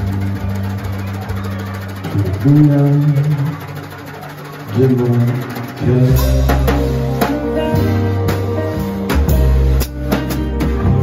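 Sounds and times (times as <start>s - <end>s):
jazz combo playing: 5.8s - 11.0s.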